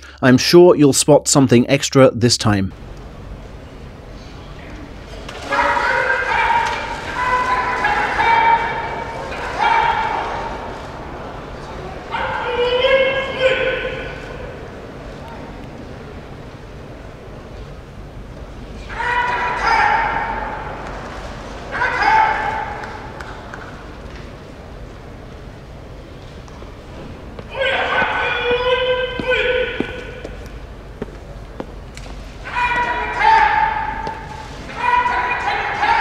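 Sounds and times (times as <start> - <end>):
referee drawn-out call: 5.2 - 14.8, 18.8 - 23.6, 27.4 - 30.7, 32.4 - 36.0.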